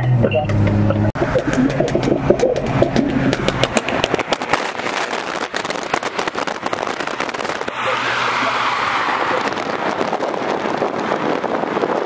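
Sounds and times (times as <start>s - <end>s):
car exhaust popping and crackling: 0.0s - 12.0s
wind and road noise: 0.0s - 12.0s.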